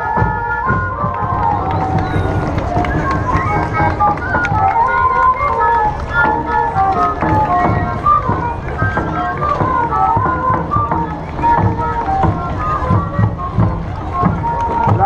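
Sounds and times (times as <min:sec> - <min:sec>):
flutes playing quick melody: 0:00.0 - 0:15.0
scattered knocks: 0:01.0 - 0:15.0
dense low rumble: 0:01.2 - 0:05.4.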